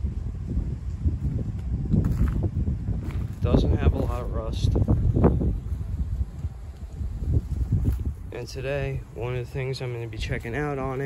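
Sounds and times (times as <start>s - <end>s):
wind rumble on microphone: 0.0s - 11.0s
footsteps on dry leaves: 2.0s - 8.3s.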